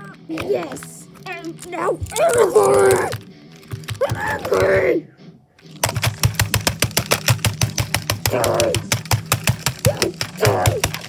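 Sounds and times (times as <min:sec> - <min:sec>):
rapid mechanical clicking: 0:05.7 - 0:11.0.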